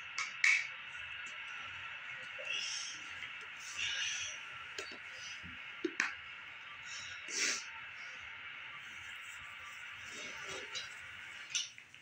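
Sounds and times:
steady white noise hiss: 0.0s - 12.0s.

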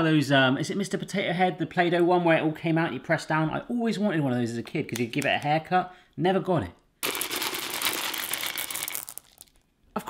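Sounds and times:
beads pouring into a tin: 7.0s - 9.6s.

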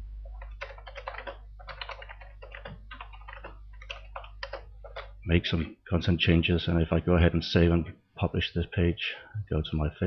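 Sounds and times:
keyboard typing: 0.2s - 5.2s.

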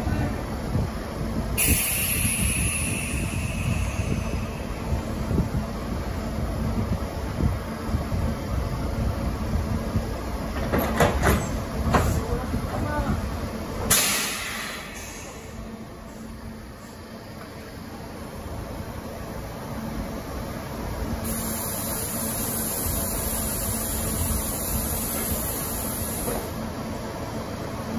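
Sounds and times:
train low hum: 0.0s - 27.9s
air hiss: 1.6s - 5.3s, 13.9s - 15.6s, 21.2s - 26.6s.

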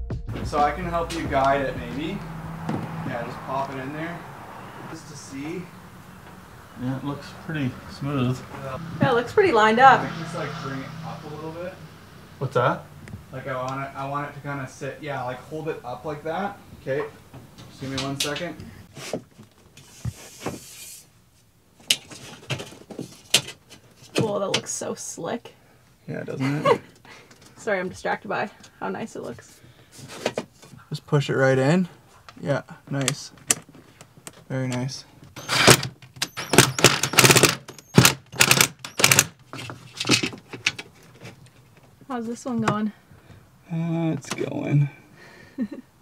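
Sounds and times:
brief scraping rub: 19.8s - 21.1s
cordless drill driving screws: 35.4s - 39.2s.

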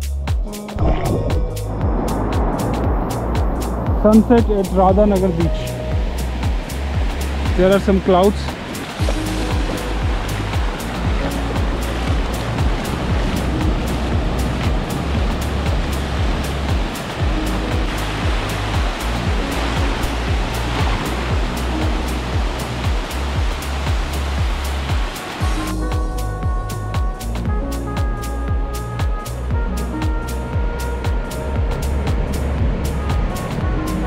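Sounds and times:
music with bass and beat: 0.0s - 34.0s
surf washing onto beach: 0.8s - 26.1s, 29.6s - 34.0s.

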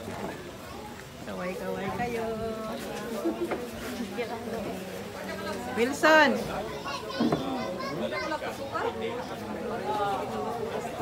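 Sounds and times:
voices chattering: 0.0s - 11.0s
children's voices: 6.4s - 11.0s.

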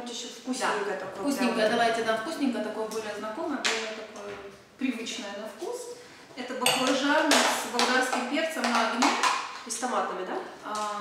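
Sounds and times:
women talking: 0.0s - 11.0s.

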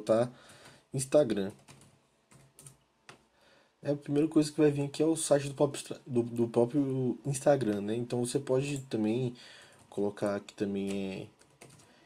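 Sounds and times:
keyboard keystrokes: 1.5s - 2.8s.

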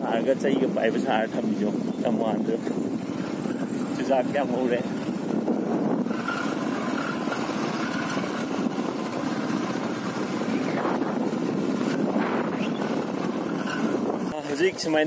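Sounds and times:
motorcycle engine running: 0.0s - 15.0s.

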